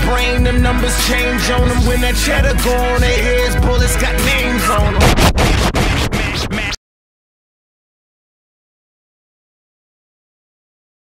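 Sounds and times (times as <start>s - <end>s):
hip-hop track: 0.0s - 6.8s
record scratching: 4.8s - 6.8s.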